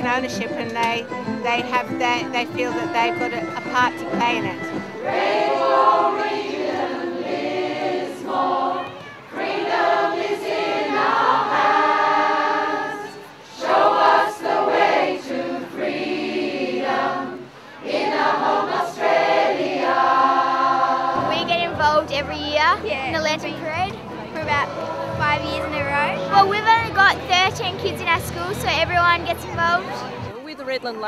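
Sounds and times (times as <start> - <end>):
choir singing: 1.6 - 22.5, 24.0 - 26.9.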